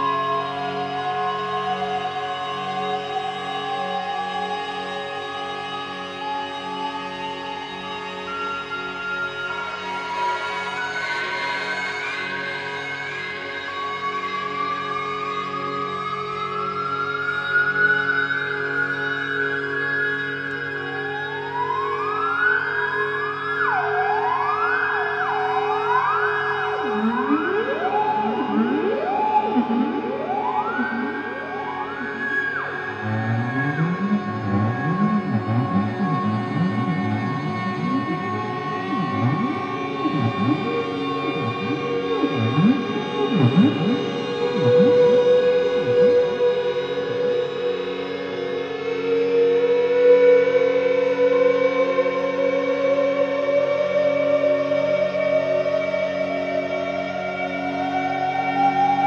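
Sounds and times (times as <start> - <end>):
electronic siren-like glissandi: 25.1 - 48.6
steady low drone: 26.6 - 48.4.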